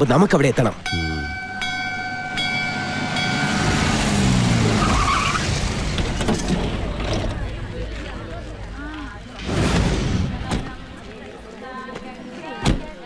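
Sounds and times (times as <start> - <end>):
temple bell ringing: 0.8 - 4.2
vehicle engine and road noise: 0.8 - 11.6.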